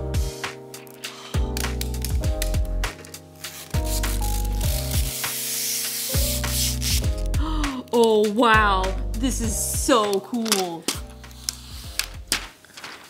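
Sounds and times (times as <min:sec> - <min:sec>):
background music with beat: 0:00.0 - 0:10.2
plastic film peeling: 0:00.8 - 0:07.4.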